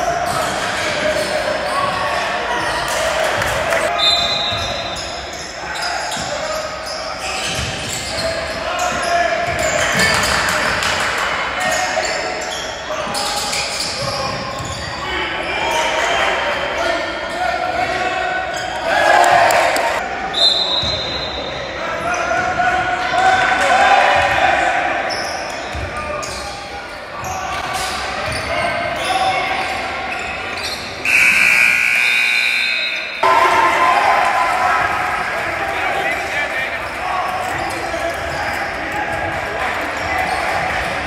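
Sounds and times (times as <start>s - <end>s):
spectators' voices: 0.0s - 41.0s.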